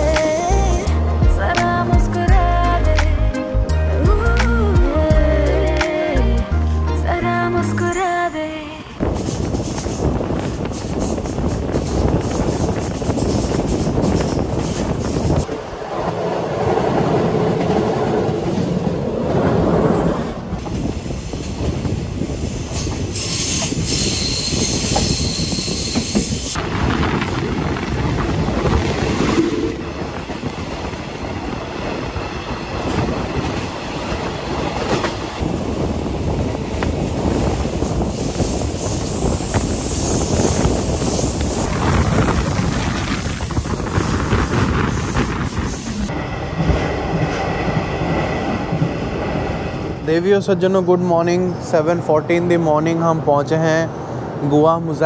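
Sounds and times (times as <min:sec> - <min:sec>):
rushing air: 0:08.8 - 0:50.5
rail clatter: 0:09.0 - 0:50.6
train wheels on rails: 0:09.0 - 0:54.6.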